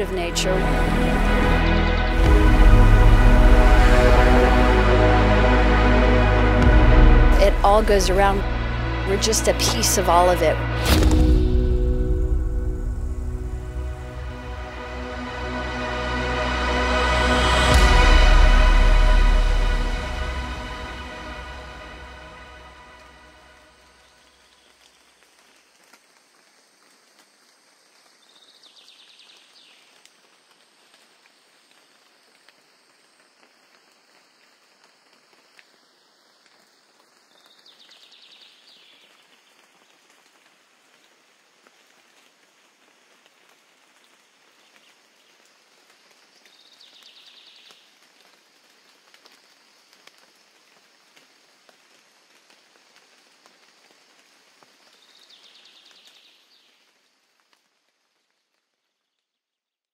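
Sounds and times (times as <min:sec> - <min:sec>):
soft outdoor hiss: 0:00.0 - 0:10.8, 0:11.7 - 0:59.4.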